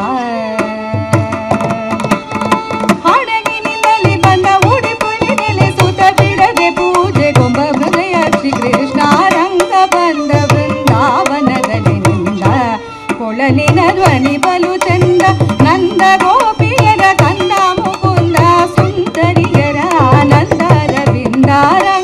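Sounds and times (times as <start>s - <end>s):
woman singing: 0.0s - 2.3s, 2.9s - 22.0s
violin: 0.0s - 22.0s.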